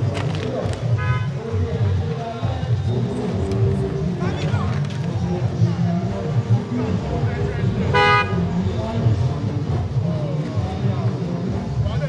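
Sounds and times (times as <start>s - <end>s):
crowd chatter: 0.0s - 12.0s
car horn toot: 7.9s - 8.5s.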